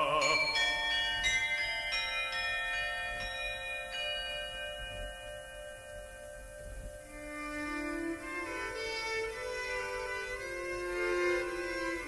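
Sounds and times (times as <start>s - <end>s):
tuned bells ringing: 0.0s - 8.4s.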